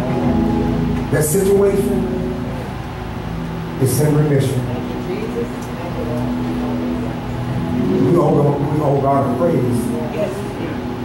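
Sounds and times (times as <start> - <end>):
low held music chord: 0.0 - 11.0.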